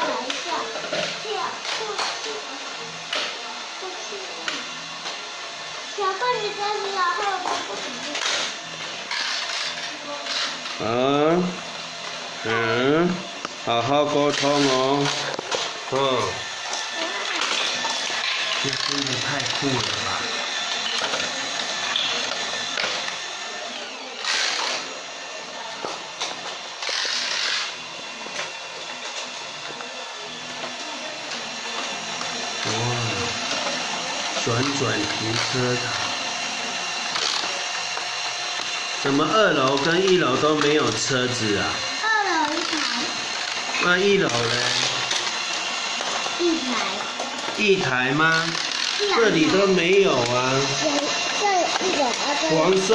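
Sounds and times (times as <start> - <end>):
toy gear mechanism whirring: 0.0 - 52.9
toy cars rattling: 6.8 - 10.8, 26.2 - 28.5, 38.6 - 52.9.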